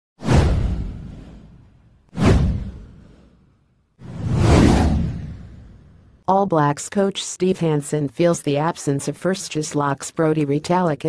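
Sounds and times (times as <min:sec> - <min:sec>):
whoosh with deep boom: 0:00.2 - 0:06.2.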